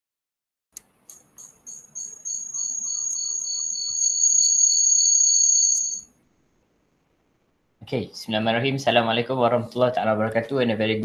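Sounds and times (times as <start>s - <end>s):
high-pitched chirring whine: 1.4s - 6.1s.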